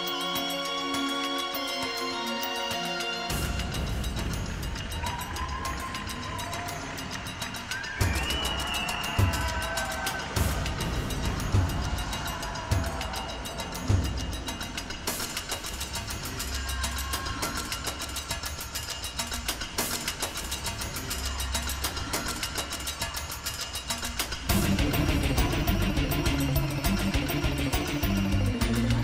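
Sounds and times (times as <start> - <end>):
accompaniment music: 0.0 - 17.0, 17.6 - 29.0.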